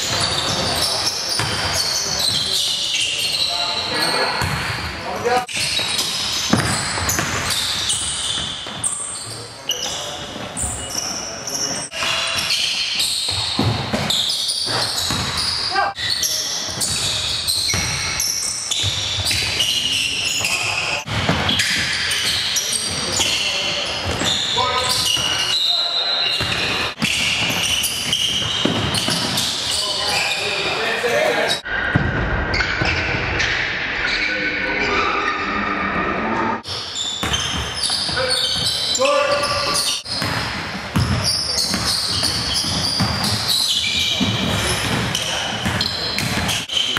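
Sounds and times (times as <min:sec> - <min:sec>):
basketball bouncing on hardwood floor: 0:04.4 - 0:04.7, 0:15.0 - 0:15.4, 0:40.2 - 0:43.5, 0:44.2 - 0:46.6.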